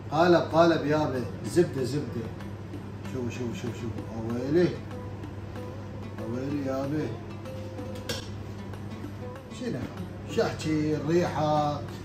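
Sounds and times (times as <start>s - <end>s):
background music with held note: 0.0s - 12.0s.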